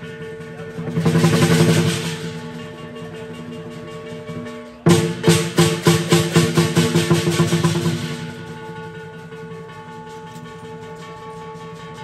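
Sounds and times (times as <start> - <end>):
cymbals ringing: 0.0 - 12.0
drum roll: 0.0 - 12.0.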